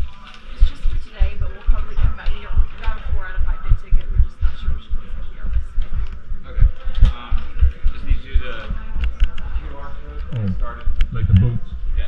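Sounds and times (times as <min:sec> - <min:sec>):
low irregular thumping: 0:00.0 - 0:09.4
indistinct voices talking: 0:00.0 - 0:09.6, 0:10.2 - 0:12.0.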